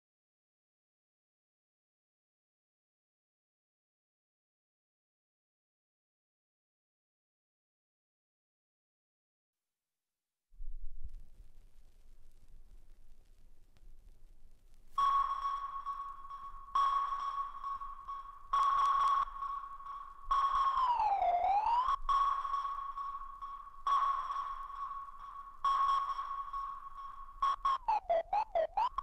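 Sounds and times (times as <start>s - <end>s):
electronic sonar ping: 15.0s - 29.0s.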